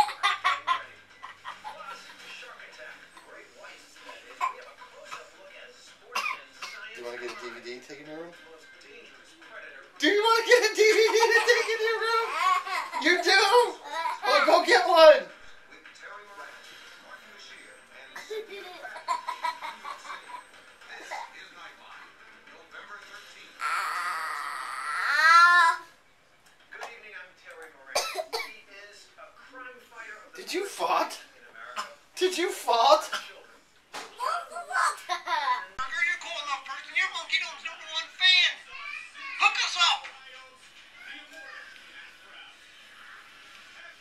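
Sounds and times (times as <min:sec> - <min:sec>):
man and girl wordless voice sounds: 0:10.0 - 0:15.3, 0:23.6 - 0:26.0, 0:34.0 - 0:40.2
sharp cough-like burst: 0:28.0 - 0:28.5.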